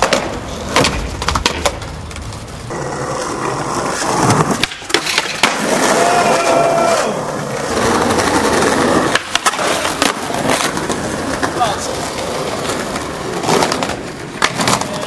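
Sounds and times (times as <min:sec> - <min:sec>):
skateboard clacking on ground: 0:00.0 - 0:15.0
skateboard wheels rolling on pavement: 0:00.0 - 0:15.0.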